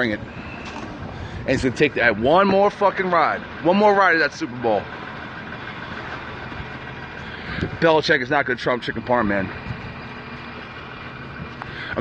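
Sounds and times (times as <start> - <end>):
city traffic noise: 0.0 - 12.0
vehicle engine humming: 0.0 - 12.0.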